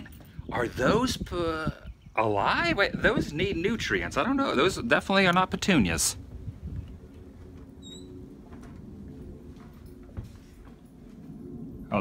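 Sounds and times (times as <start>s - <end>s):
screen door opening: 6.9s - 11.3s
door squeak: 7.8s - 8.4s.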